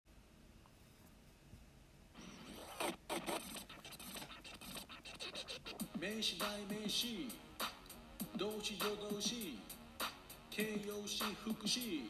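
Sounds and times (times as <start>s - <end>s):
scratchy noisy bursts: 2.2s - 12.0s
intro music: 3.2s - 12.0s.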